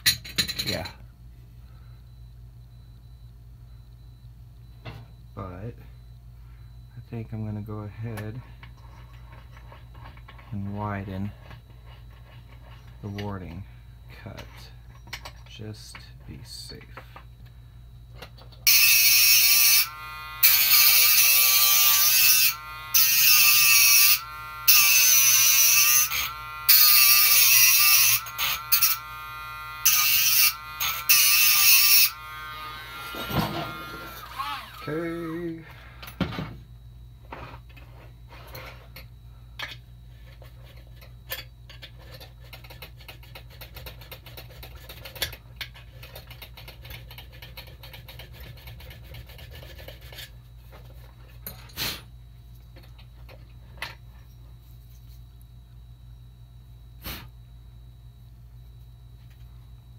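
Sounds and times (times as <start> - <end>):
rotary tool grinding metal: 18.6 - 35.4.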